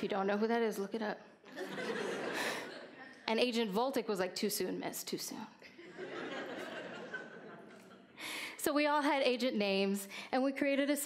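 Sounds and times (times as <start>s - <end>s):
audience laughing: 1.5s - 3.1s, 5.8s - 8.2s.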